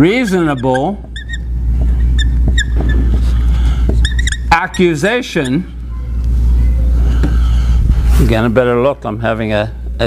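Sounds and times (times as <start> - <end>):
marker squeaking on whiteboard: 0.0 - 7.5
steady low hum: 0.0 - 10.0
marker tapping: 0.6 - 4.4.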